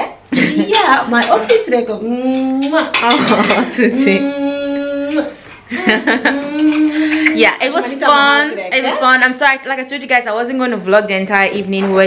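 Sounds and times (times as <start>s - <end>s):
dishes and cutlery clinking: 0.8s - 1.8s, 2.4s - 4.1s
woman cooing: 3.9s - 5.4s, 6.0s - 7.5s.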